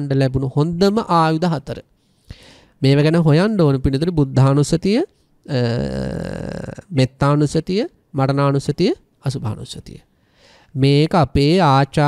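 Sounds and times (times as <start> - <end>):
man's gravelly throat sound: 5.5 - 7.1.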